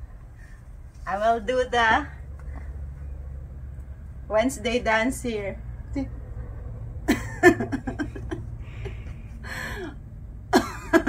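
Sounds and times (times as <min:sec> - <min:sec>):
woman laughing: 0:07.1 - 0:09.1, 0:10.6 - 0:11.0.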